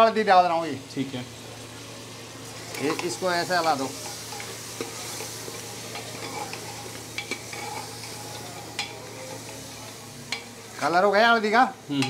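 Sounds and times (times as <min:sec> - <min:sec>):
meat sizzling in a pot: 0:00.0 - 0:12.0
ladle scraping against pot: 0:04.0 - 0:09.4.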